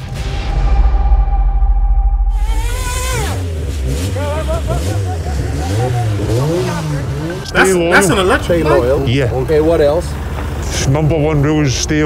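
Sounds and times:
men's voices: 3.9 - 12.0.

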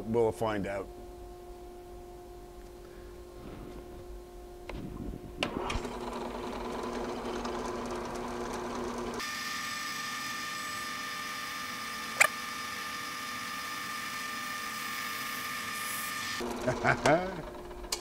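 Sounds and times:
drill press motor whine: 1.1 - 18.0.

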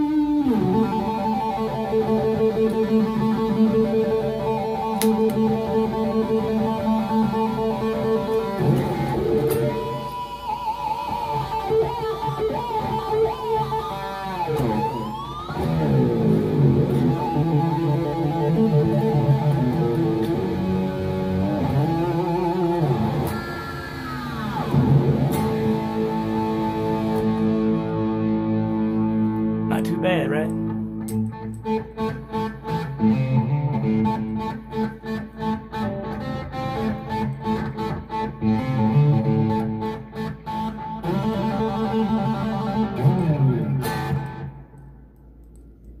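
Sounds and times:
electric guitar chords: 0.0 - 46.0.

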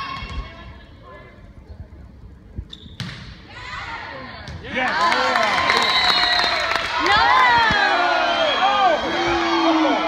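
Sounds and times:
volleyball being hit: 3.0 - 3.4.

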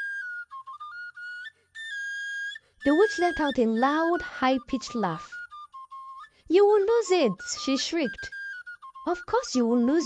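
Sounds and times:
high whistle-like melody: 0.0 - 10.0.

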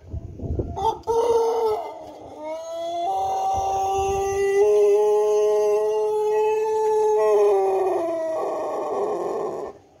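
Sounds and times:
rooster crowing: 0.8 - 9.8.

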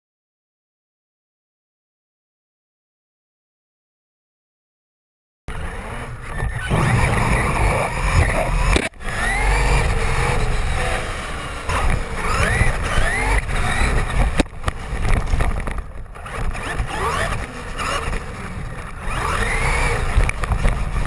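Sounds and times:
toy truck motor whine: 5.5 - 21.0
tyres rumbling: 5.5 - 21.0.

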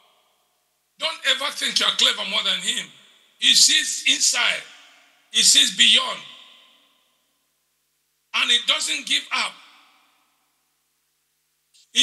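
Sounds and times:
man speaking in echoing hall: 1.0 - 7.1, 8.4 - 10.3.

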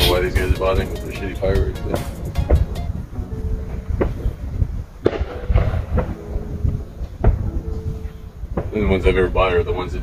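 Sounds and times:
distant fireworks bangs: 5.0 - 7.5, 8.5 - 9.0.

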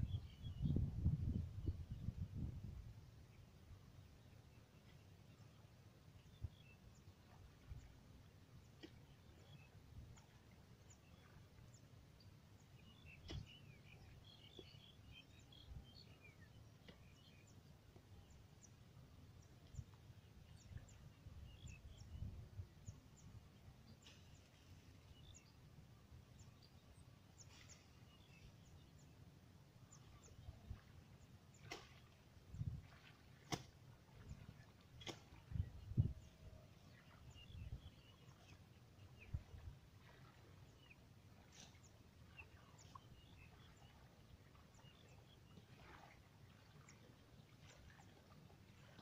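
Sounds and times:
faint bird chirps: 35.3 - 46.8.

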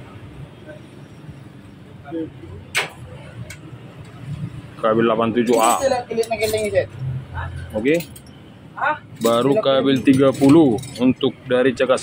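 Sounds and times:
low workshop background: 0.0 - 12.0.

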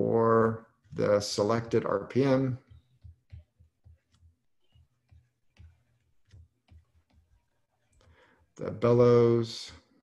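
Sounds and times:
stylus tapping on drawing tablet: 0.4 - 8.6.

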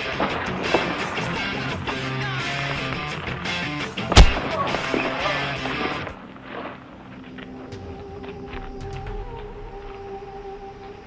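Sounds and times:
background music with held notes: 0.0 - 11.0
sharp punch-like smack: 4.2 - 4.5.

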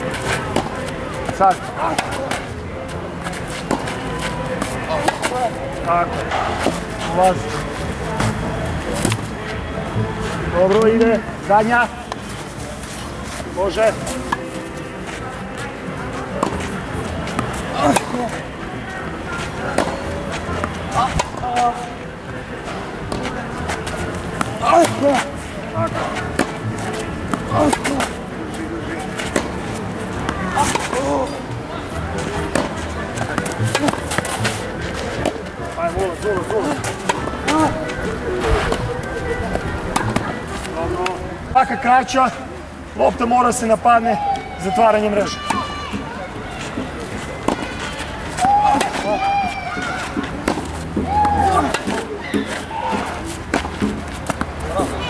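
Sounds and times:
racket hitting tennis ball: 0.0 - 2.5, 3.2 - 7.3, 8.2 - 9.4, 16.2 - 18.4, 19.3 - 21.8, 22.6 - 28.4, 29.0 - 41.2, 46.6 - 55.0
background voices: 0.0 - 41.6
background music: 0.0 - 46.4.

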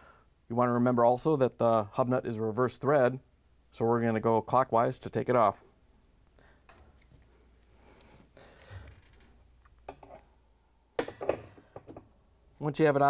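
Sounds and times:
faint handling noises: 6.2 - 12.2.

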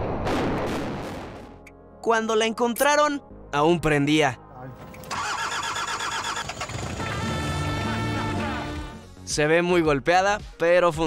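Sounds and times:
explosion and building collapse: 0.0 - 1.5.

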